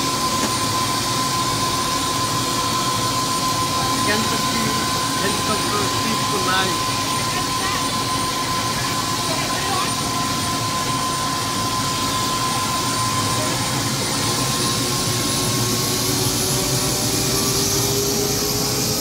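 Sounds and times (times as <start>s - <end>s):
helicopter engine and rotor: 0.0s - 19.0s.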